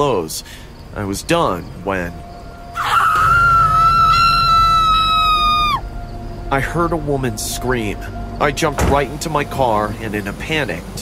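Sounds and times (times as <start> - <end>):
woman screaming: 2.8 - 5.8.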